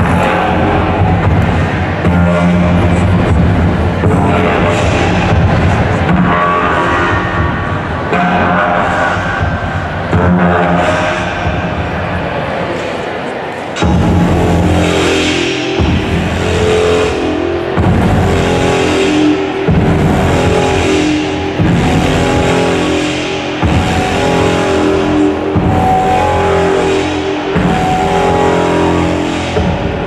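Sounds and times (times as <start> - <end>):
slow atmospheric dance music: 0.0 - 30.0
deep bass surge: 13.8 - 30.0.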